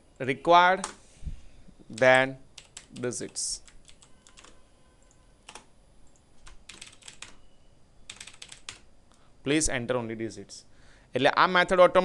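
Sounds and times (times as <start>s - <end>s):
computer keyboard typing: 1.9s - 7.4s, 8.1s - 8.9s.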